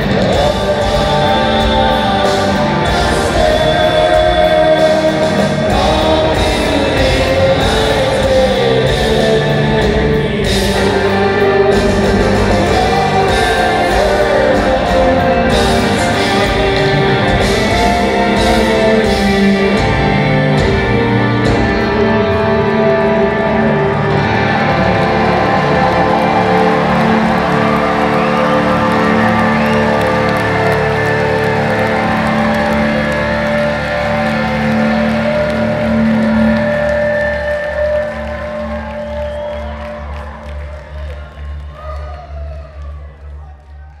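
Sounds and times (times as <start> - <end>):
live rock band held chord: 0.0 - 41.7.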